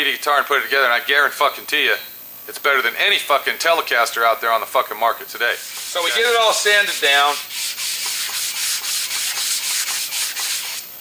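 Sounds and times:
sandpaper rubbing on wood: 5.6s - 10.9s.

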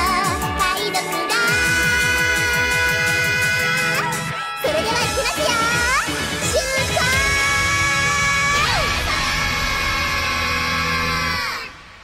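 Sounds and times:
pop song held chord: 0.0s - 11.8s.

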